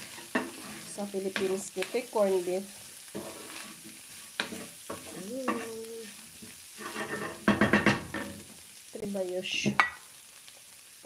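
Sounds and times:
wooden spoon scraping a pan: 0.0 - 8.5
food sizzling: 0.0 - 11.0.

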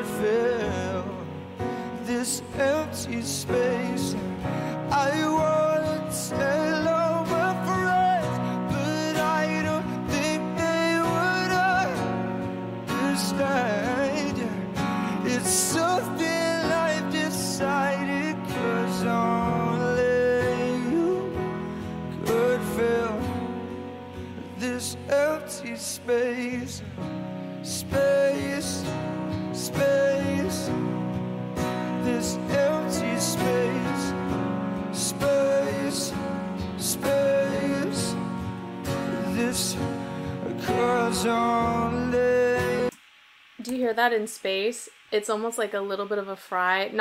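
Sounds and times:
ballad accompaniment: 0.0 - 43.0
man singing: 0.0 - 43.0
acoustic guitar: 0.0 - 43.8.

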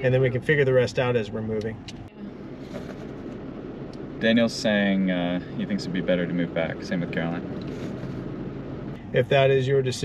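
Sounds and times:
truck cab rumble: 0.0 - 10.0.

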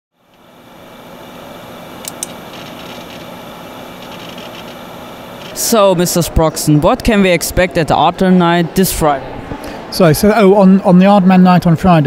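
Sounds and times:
room noise with faint hum: 0.2 - 12.0
sharp clicks: 2.0 - 4.8.

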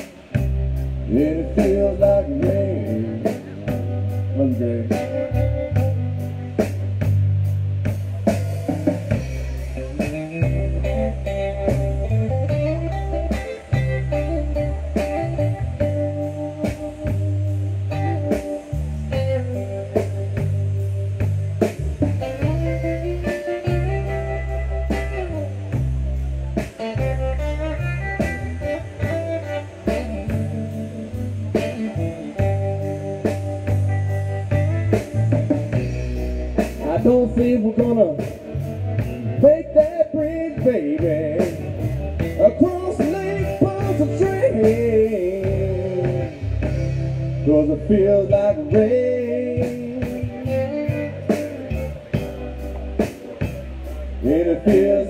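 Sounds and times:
drum kit beat: 0.0 - 55.0
electric bass: 0.0 - 55.0
electric guitar: 0.0 - 55.0.

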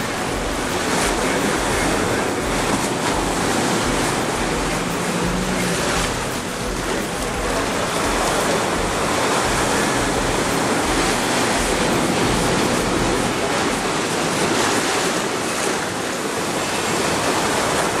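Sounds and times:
waves breaking over rocks: 0.0 - 18.0.

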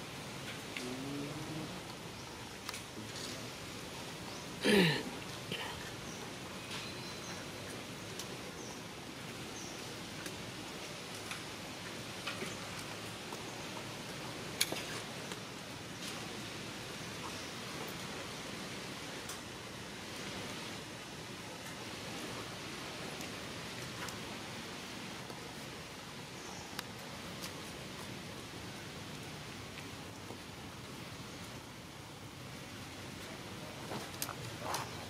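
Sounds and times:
outdoor background hiss: 0.0 - 35.0.

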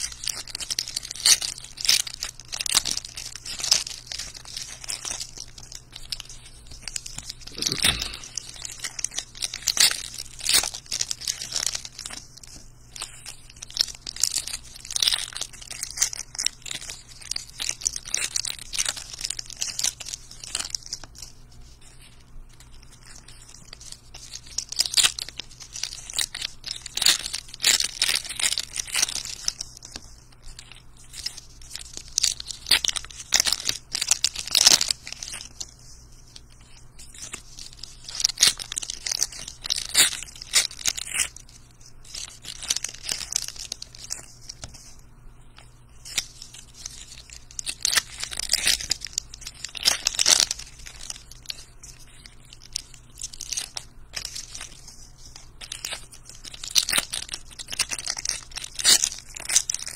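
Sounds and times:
wrappers crinkling and tearing: 0.0 - 59.9.

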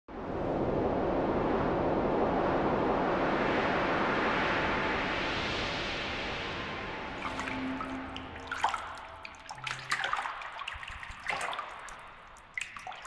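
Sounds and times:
steady rush of noise: 0.3 - 12.4.

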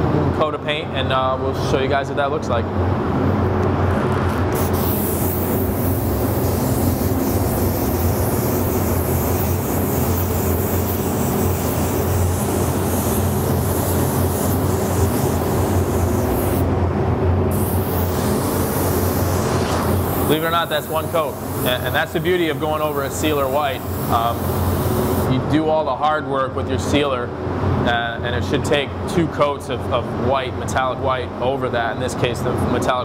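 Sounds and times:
steady low hum: 0.0 - 33.0
spray gun hissing: 4.6 - 16.7, 17.5 - 25.3.

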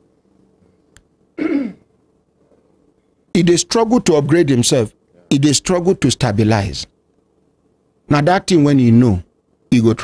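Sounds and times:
man clearing his throat: 1.4 - 1.9.

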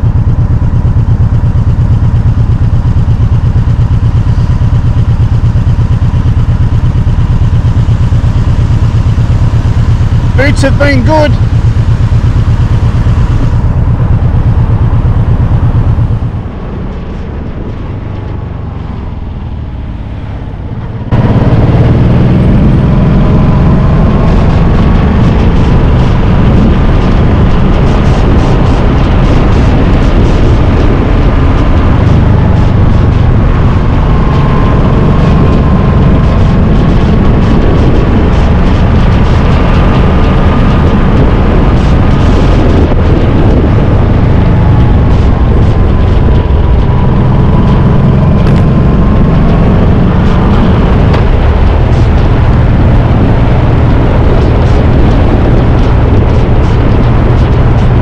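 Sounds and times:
motorcycle engine: 0.0 - 58.0
wind noise on microphone: 0.0 - 58.0.

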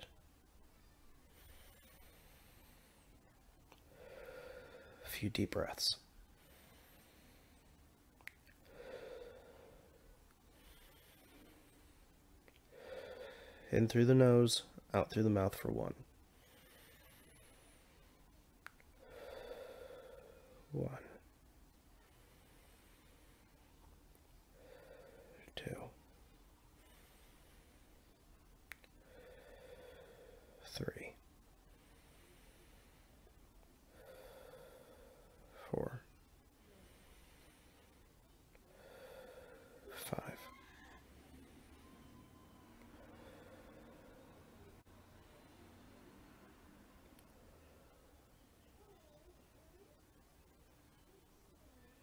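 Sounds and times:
faint breath through the nose: 1.3 - 5.2, 6.3 - 8.0, 16.3 - 20.7, 24.4 - 28.2, 29.0 - 30.8, 36.6 - 46.4.

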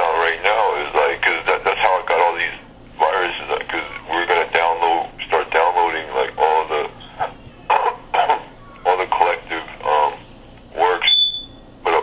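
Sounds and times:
person speaking: 0.0 - 11.2
short high electronic beep: 11.1 - 11.6.

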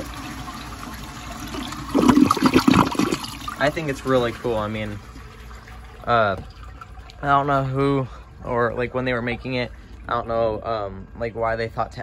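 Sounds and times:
toilet flushing: 0.0 - 12.0.

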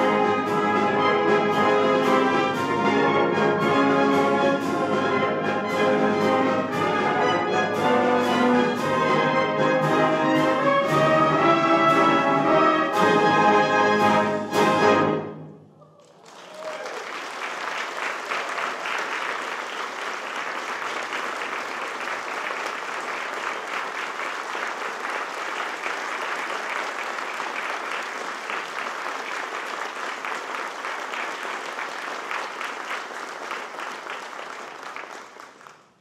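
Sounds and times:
audience applauding: 15.9 - 36.0.

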